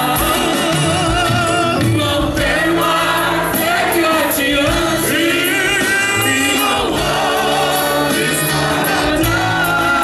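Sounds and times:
group singing a hymn: 0.0s - 10.0s.

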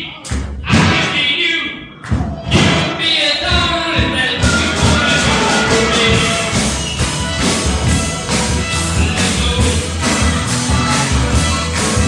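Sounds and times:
heavy drum thumps: 0.3s - 1.2s, 2.1s - 12.0s
performer's voice: 2.5s - 6.8s
live rock band: 4.2s - 12.0s.

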